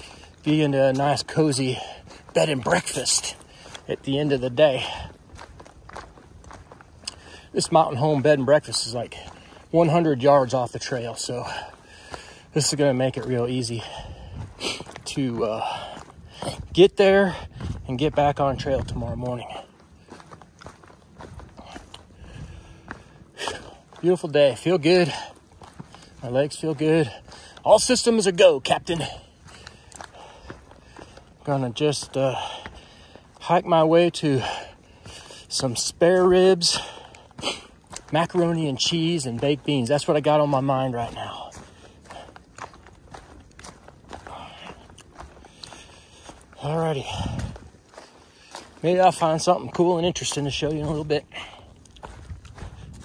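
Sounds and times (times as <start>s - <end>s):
footsteps crunching on dry leaves: 0.0s - 53.0s.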